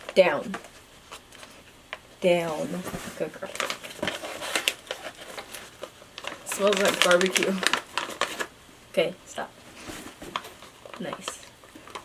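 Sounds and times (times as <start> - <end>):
plastic pouch crinkling: 3.4 - 8.5.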